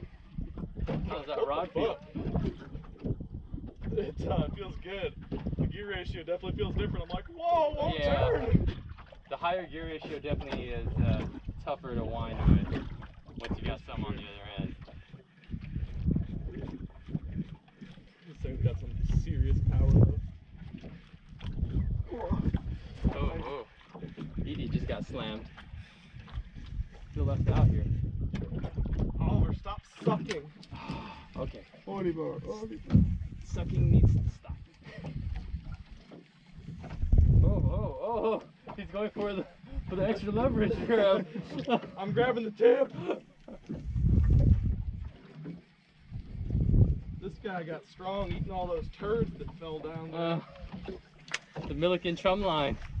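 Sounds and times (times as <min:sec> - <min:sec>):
wind buffeting microphone: 0:00.0 - 0:42.3, 0:43.0 - 0:45.3, 0:46.0 - 0:53.0
sea: 0:00.0 - 0:53.0
water washing around boat: 0:00.0 - 0:53.0.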